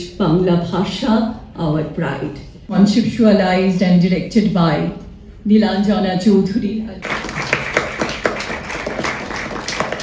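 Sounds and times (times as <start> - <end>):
crowd applauding: 7.0 - 10.0.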